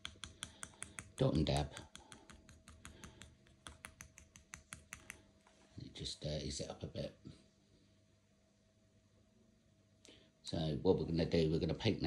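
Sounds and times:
rapid light tapping: 0.0 - 5.3.

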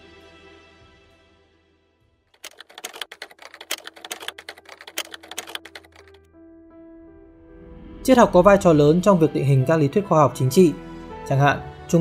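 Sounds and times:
keyboard typing clatter: 2.4 - 6.2.

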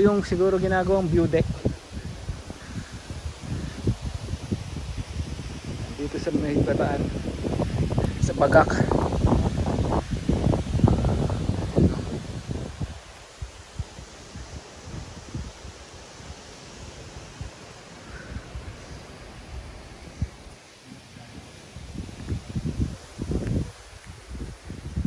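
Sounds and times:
leaves rustling: 0.0 - 25.0
wind buffeting microphone: 0.0 - 25.0.

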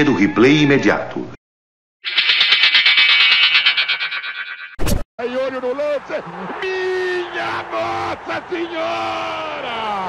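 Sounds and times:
buzzy high-pitched electronic tone: 2.0 - 4.8.

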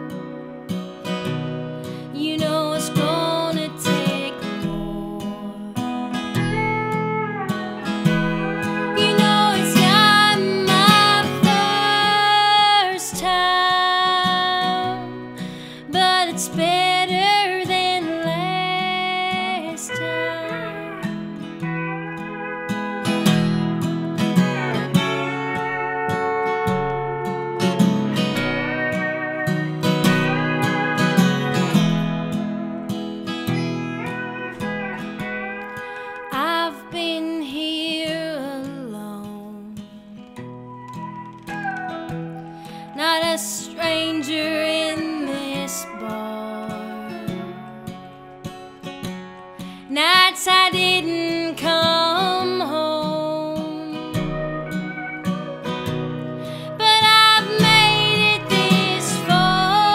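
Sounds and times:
pedal steel guitar: 0.0 - 59.9
strummed acoustic guitar: 0.0 - 59.9.

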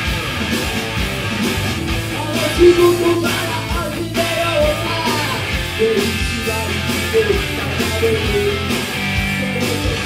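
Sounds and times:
drum beat and bass backing track: 0.0 - 10.0
electric guitar: 0.0 - 10.0.

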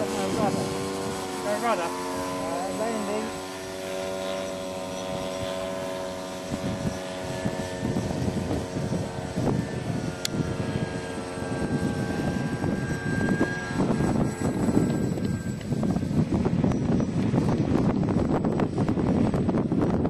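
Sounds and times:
model plane engine droning: 0.0 - 20.0
wind buffeting microphone: 0.0 - 20.0.

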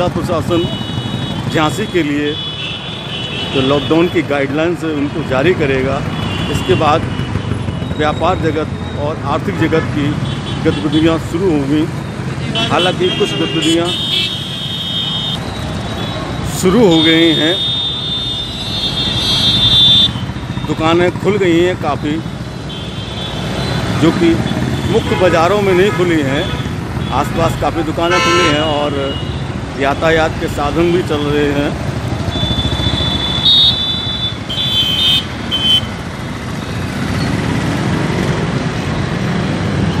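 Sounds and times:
motorcycles running: 0.0 - 40.0
road traffic: 0.0 - 40.0.

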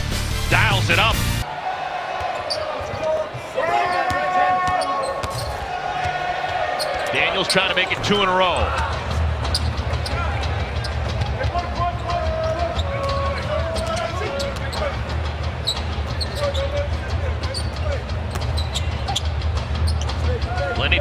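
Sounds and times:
arena crowd hum: 0.0 - 21.0.

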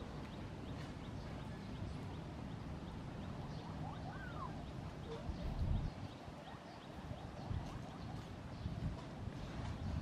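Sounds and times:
faint high chirps: 1.2 - 8.2.

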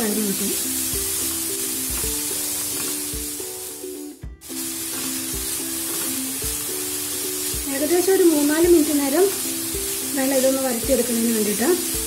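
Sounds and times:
light background music: 0.0 - 12.0
onions sizzling in fat: 0.0 - 12.0.

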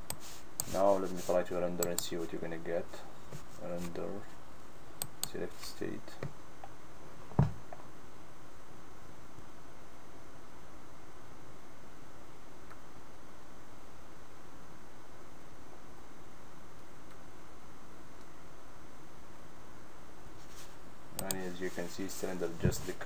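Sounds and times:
background hiss: 0.0 - 23.0
faint high whine: 0.0 - 23.0.

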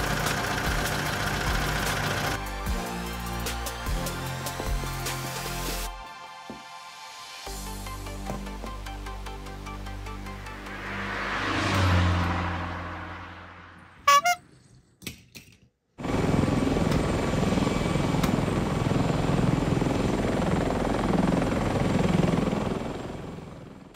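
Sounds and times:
helicopter rotor whir: 0.0 - 3.4, 16.0 - 23.9
whoosh: 10.2 - 14.1.

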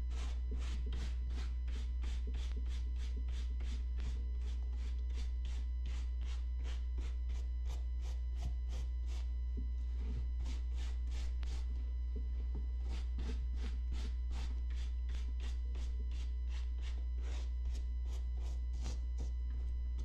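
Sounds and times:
low hum: 0.0 - 20.0.

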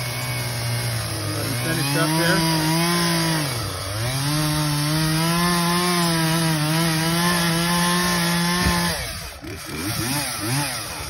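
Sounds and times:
chainsaw engine running: 0.0 - 11.0.

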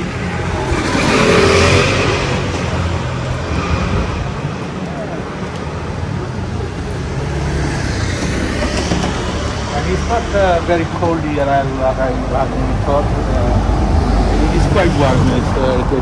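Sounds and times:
car passing by: 0.0 - 11.2
low traffic rumble: 0.0 - 16.0.

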